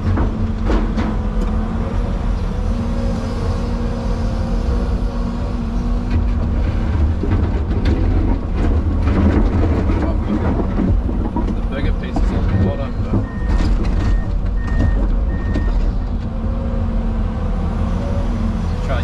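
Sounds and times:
excavator engine and hydraulics: 0.0 - 19.0.

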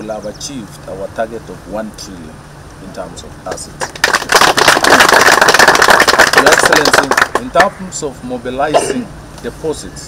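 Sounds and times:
audience applauding: 3.8 - 7.5.

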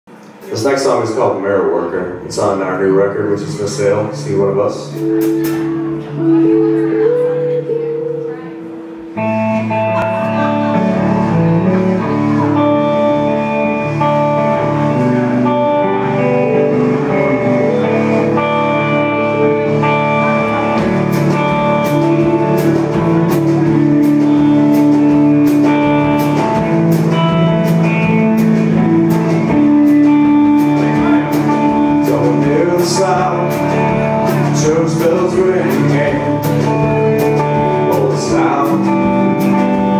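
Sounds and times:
bass guitar: 0.1 - 39.9
electric guitars: 0.1 - 39.9
drum and cymbal hits: 3.4 - 6.2, 12.7 - 39.9.

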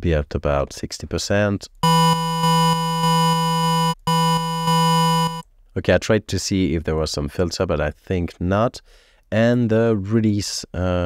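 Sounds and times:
square-wave synth note: 1.8 - 5.4.

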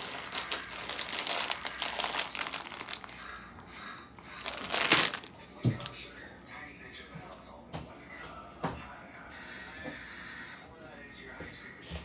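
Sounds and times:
plastic bag crinkling: 0.0 - 3.2, 4.4 - 5.9.

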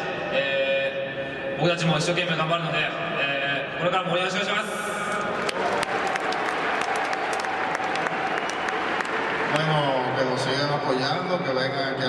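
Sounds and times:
stadium crowd applauding: 5.1 - 11.1.

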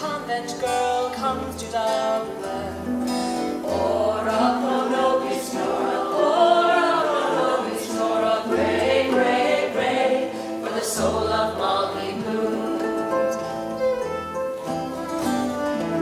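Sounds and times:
women singing together: 3.6 - 13.4
low instrumental accompaniment: 11.0 - 16.0.

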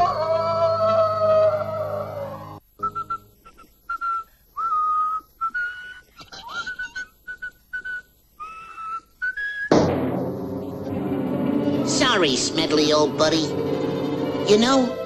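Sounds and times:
person whistling a tune: 2.8 - 9.8
loud music: 9.7 - 15.0.

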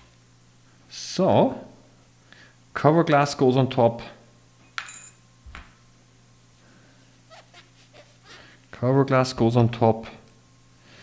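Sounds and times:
glass clink with ring: 4.7 - 5.2.

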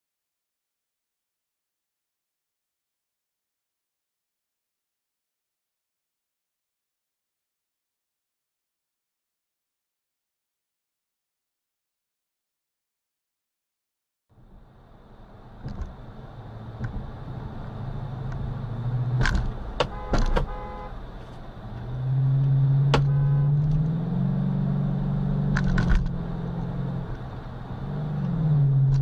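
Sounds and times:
car engine and road noise: 14.3 - 29.0.

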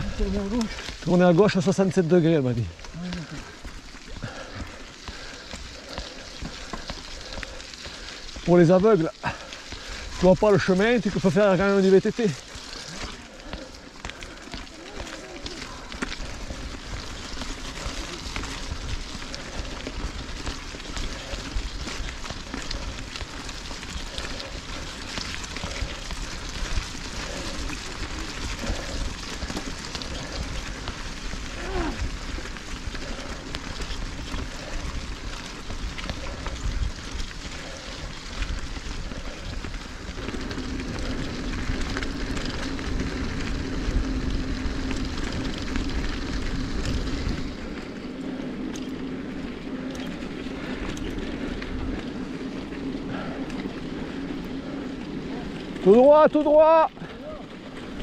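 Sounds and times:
bike tyres crunching on stones: 0.0 - 58.0.

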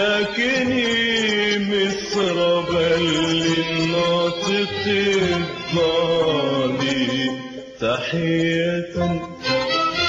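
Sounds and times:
vocal chanting with sliding notes: 0.0 - 9.6.

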